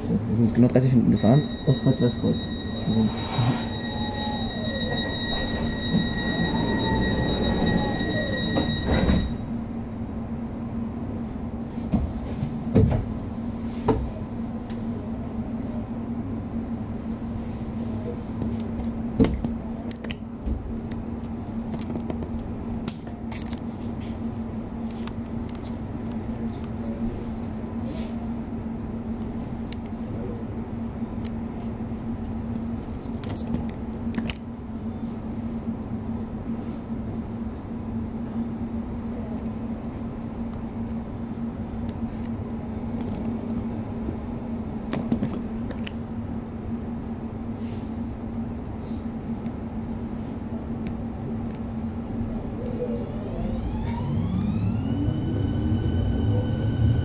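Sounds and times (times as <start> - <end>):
train electrical hum: 0.0 - 57.0
high whining tones: 1.0 - 10.2, 52.4 - 57.0.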